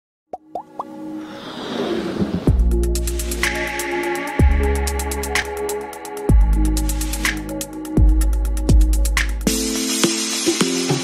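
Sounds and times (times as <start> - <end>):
rising whoosh: 1.2 - 3.9.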